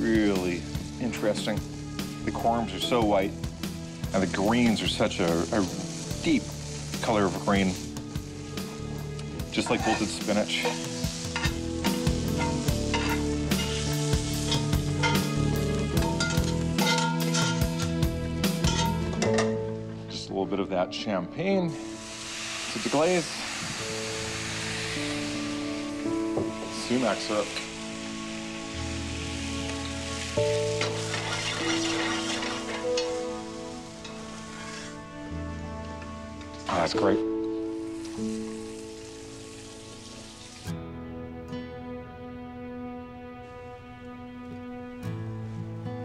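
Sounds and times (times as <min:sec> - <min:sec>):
food sizzling in a skillet: 0:00.0 - 0:19.9, 0:21.5 - 0:40.8
soft background music: 0:00.0 - 0:46.0.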